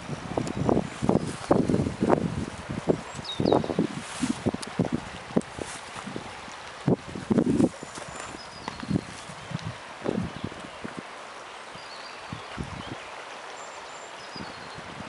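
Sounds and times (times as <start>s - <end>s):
river rushing: 0.0s - 15.0s
footsteps on dry leaves: 3.8s - 4.5s, 5.4s - 8.3s.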